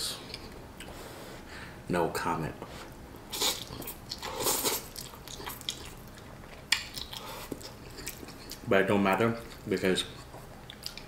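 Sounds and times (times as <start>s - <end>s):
person slurping noodles: 3.3s - 4.9s
person chewing: 3.3s - 8.7s, 9.4s - 11.0s.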